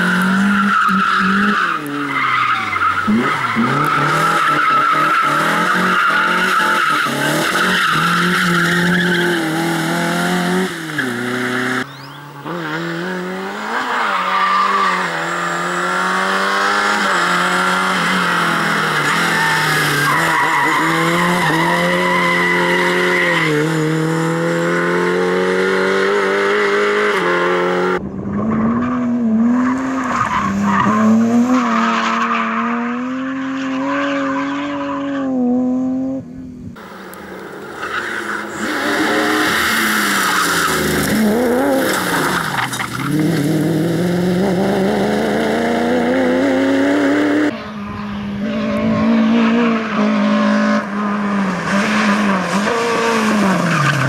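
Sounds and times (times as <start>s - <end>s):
rally car engines revving: 0.0s - 54.0s.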